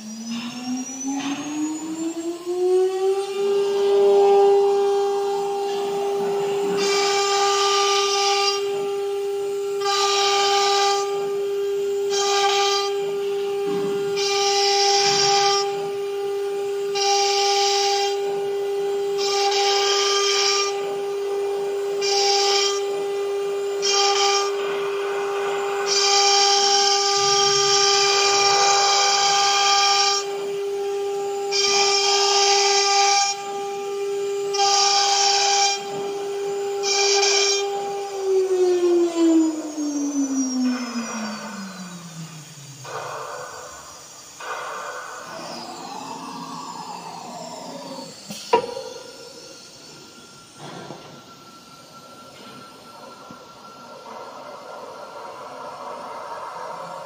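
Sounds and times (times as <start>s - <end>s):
router spindle whine: 0.0s - 57.0s
rush of machine noise: 0.0s - 57.0s.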